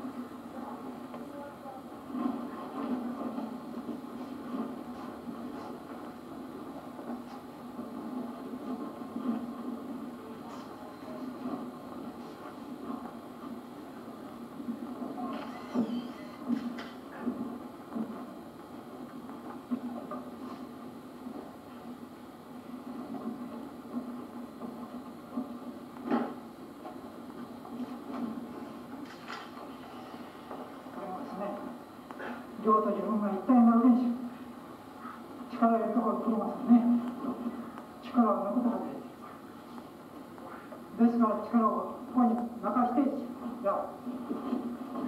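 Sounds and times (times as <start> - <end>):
videotape hum and hiss: 0.0 - 45.0.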